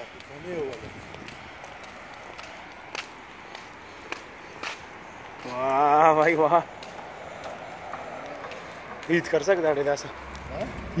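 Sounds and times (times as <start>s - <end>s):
footsteps on brick paving: 0.0s - 11.0s.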